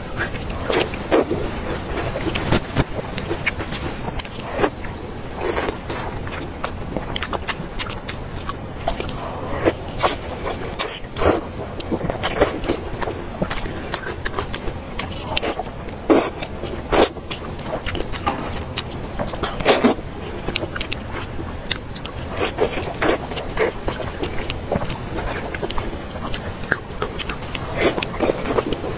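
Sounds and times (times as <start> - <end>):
chewing with wet mouth smacks: 0.0 - 28.9.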